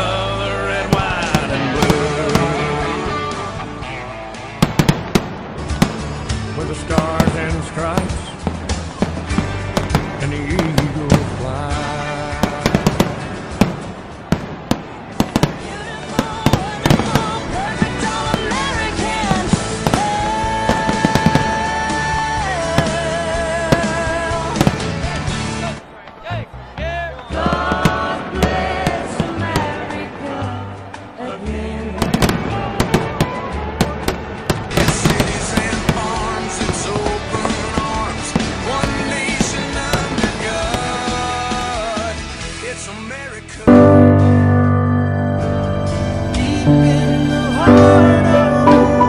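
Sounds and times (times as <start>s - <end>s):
fireworks bangs and crackles: 0.0s - 44.7s
background music: 0.0s - 49.0s.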